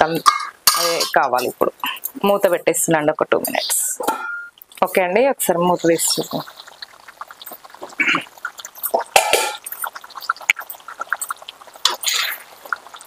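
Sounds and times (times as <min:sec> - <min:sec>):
curry bubbling in a pot: 0:00.0 - 0:13.0.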